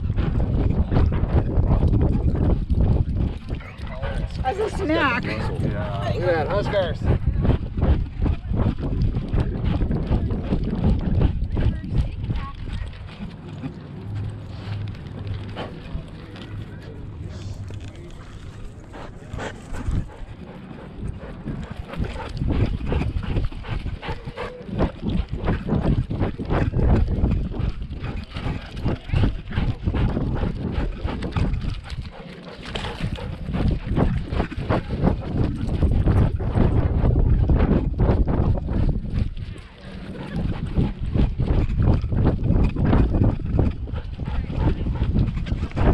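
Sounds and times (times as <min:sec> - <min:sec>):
low rumble: 0:00.0 - 0:45.9.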